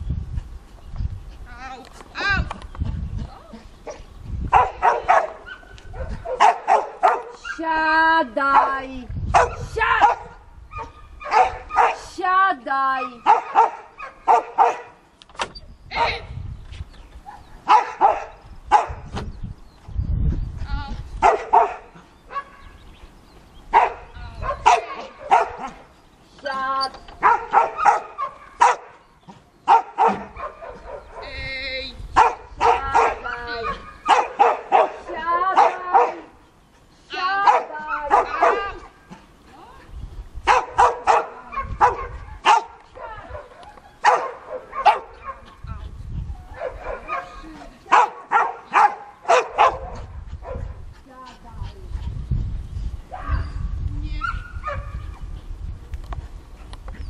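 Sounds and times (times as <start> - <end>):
dog barking: 3.9 - 7.4, 9.3 - 12.0, 13.0 - 15.0, 16.0 - 16.2, 17.3 - 19.1, 21.2 - 22.7, 23.7 - 25.8, 27.2 - 29.0, 29.7 - 31.3, 32.2 - 36.3, 37.4 - 38.9, 40.5 - 45.8, 46.5 - 50.8, 54.2 - 55.1.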